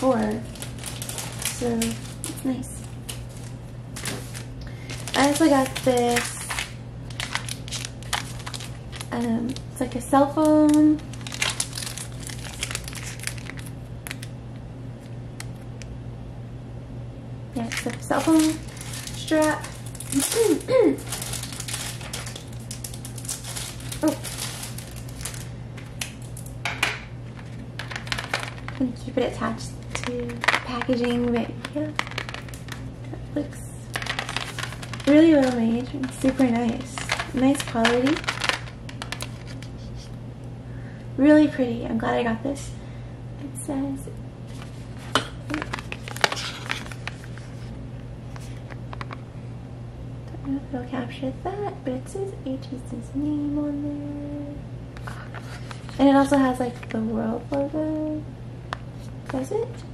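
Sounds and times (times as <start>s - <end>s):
cardboard rustling: 0.0s - 9.2s, 10.7s - 13.6s, 17.6s - 25.4s, 29.9s - 32.8s, 33.9s - 39.8s, 44.5s - 47.7s
plastic packaging crinkling: 0.0s - 14.4s, 17.6s - 40.1s, 44.5s - 49.2s, 55.0s - 57.8s
steady low hum: 0.0s - 59.9s
beads clicking and rattling: 33.9s - 39.4s.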